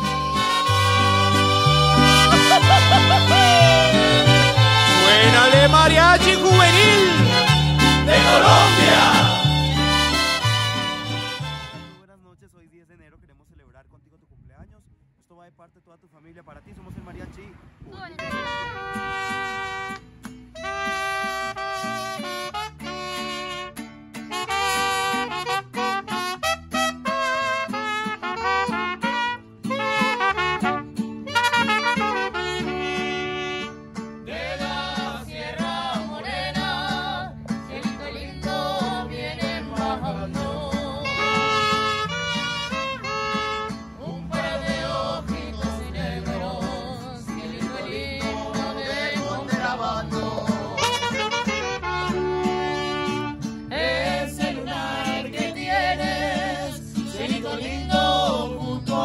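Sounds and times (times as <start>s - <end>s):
saxophone melody: 0.0s - 12.0s, 18.2s - 33.9s, 40.8s - 45.0s, 50.6s - 53.5s
trumpet melody: 0.0s - 12.0s, 18.2s - 35.1s, 40.9s - 45.2s, 50.6s - 53.7s
mariachi band playing: 0.0s - 12.1s, 18.1s - 59.0s.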